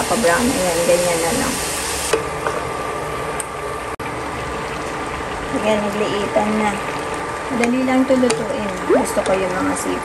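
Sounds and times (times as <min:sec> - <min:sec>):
food bubbling in a pan: 0:00.9 - 0:10.0.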